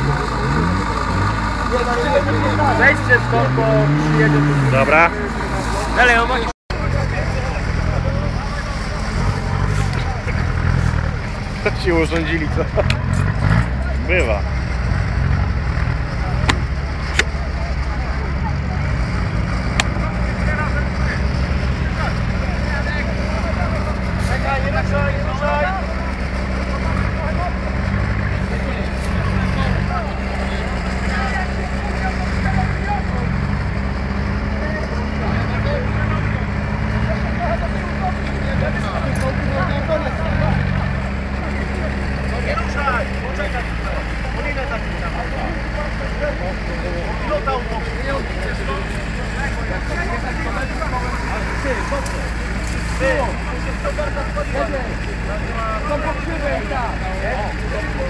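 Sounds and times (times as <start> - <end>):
tracked vehicle engine running: 0.0 - 58.0.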